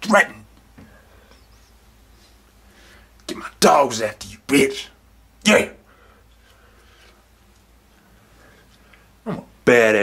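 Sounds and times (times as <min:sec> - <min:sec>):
background hiss: 0:00.0 - 0:10.0
faint low hum: 0:00.0 - 0:10.0.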